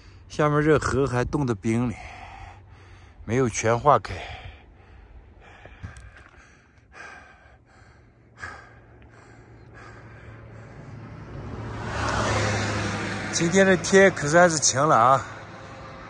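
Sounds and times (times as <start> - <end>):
person breathing hard: 2.0 - 3.2, 4.2 - 11.5
steady low hum: 2.0 - 11.6.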